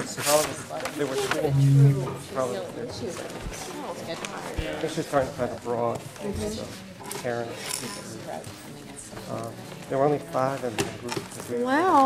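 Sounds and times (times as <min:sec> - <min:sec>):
person humming low: 0:01.5 - 0:02.2.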